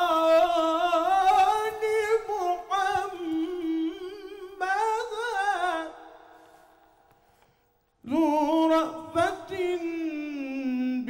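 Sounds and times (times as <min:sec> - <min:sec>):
man chanting into a microphone: 0:00.0 - 0:06.4, 0:08.0 - 0:11.0.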